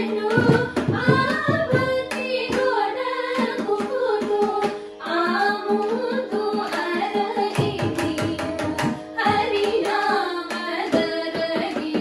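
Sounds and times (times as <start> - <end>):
women singing devotional song: 0.0 - 12.0
drum strokes: 0.2 - 4.7.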